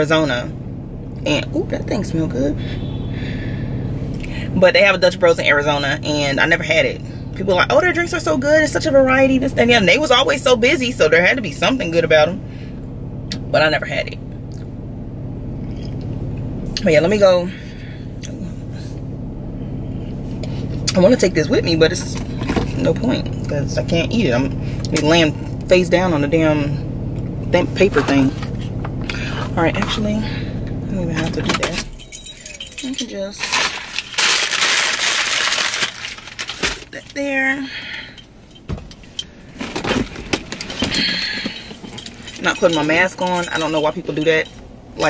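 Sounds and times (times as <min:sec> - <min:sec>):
car engine idling: 0:00.0 - 0:45.0
rustling: 0:33.3 - 0:37.1
sharp clicks and clinks: 0:38.0 - 0:45.0.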